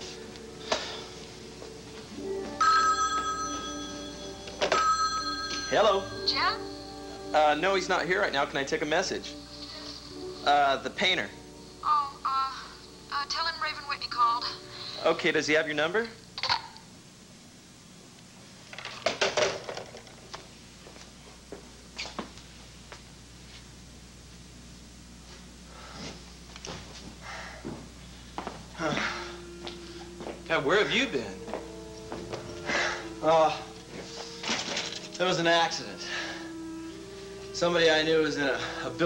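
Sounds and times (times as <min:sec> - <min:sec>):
telephone bell ringing: 0:02.6 - 0:06.9.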